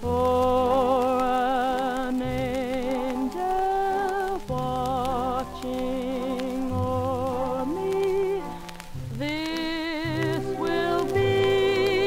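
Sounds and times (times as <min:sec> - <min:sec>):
record surface crackle: 0:00.0 - 0:12.0
dance band recording: 0:02.6 - 0:12.0.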